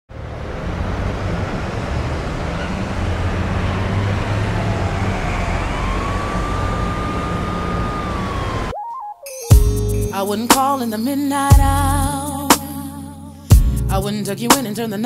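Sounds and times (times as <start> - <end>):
city traffic rumble: 0.1 - 8.7
siren: 2.1 - 8.8.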